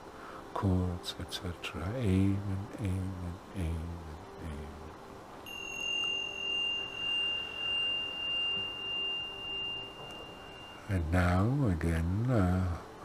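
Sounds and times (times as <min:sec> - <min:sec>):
small metal bell ringing: 0:05.4 - 0:11.1.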